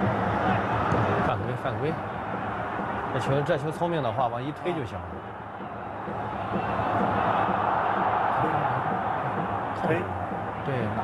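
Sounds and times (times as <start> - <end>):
stadium crowd roaring: 0.0 - 11.0.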